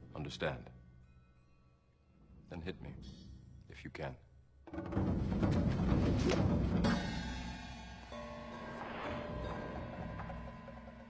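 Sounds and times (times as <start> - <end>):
orchestral film music: 4.7 - 11.0
timpani and drums: 4.7 - 11.0.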